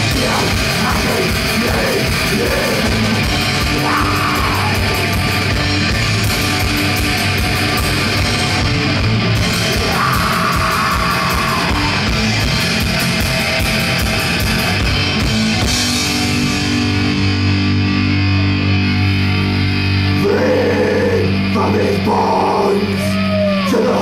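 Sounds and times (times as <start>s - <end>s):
fast drumming with cymbals: 0.0s - 16.7s
bass guitar: 0.0s - 24.0s
distorted electric guitars: 0.0s - 24.0s.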